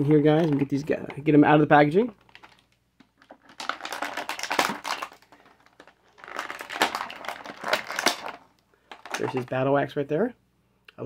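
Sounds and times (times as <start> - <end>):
plastic packaging crinkling: 0.3 - 1.1, 2.2 - 9.6.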